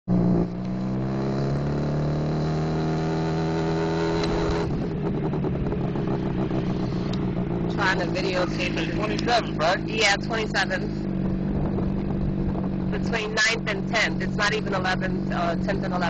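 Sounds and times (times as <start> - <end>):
motorcycle engine while riding: 0.1 - 16.0.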